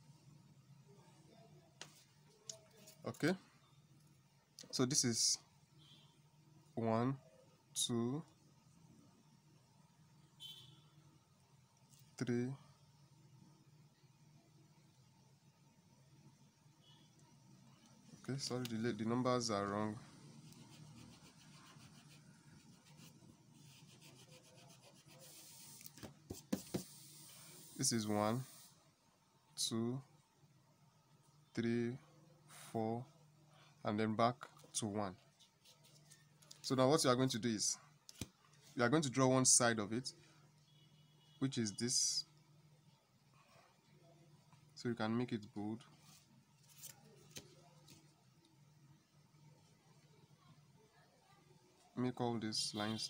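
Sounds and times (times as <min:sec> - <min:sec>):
eraser rubbing on paper: 0:20.4 - 0:28.7.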